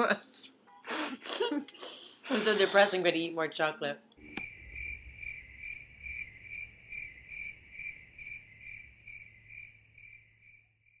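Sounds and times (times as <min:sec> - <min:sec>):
crickets chirping: 0:04.2 - 0:11.0.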